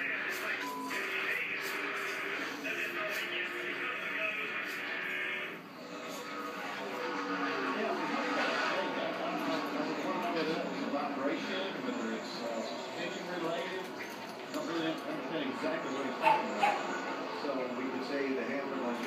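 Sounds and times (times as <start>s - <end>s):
television music: 0.0s - 19.0s
voices on television: 0.0s - 19.0s.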